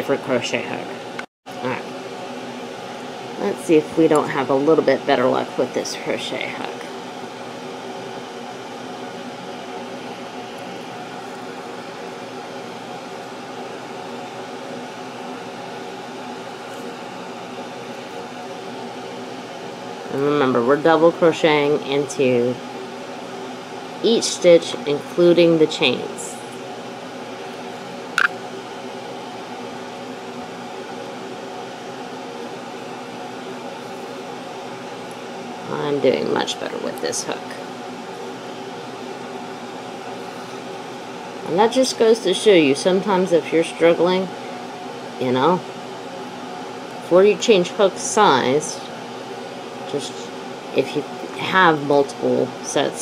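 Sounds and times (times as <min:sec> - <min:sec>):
air conditioner fan whirring: 0:00.0 - 0:53.0.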